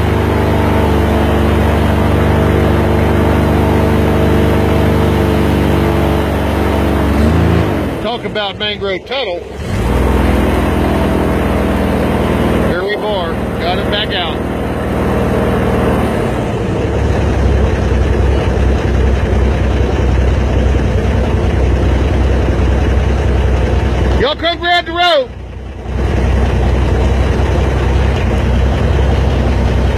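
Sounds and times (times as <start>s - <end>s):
swamp buggy engine drone: 0.0s - 29.9s.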